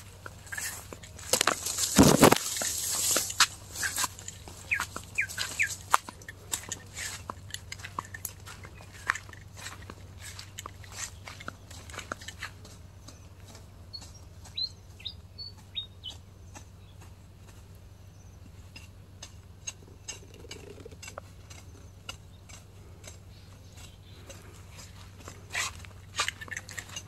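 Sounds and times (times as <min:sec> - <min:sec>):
sharp clicks and crackles: 0:00.2 - 0:12.8.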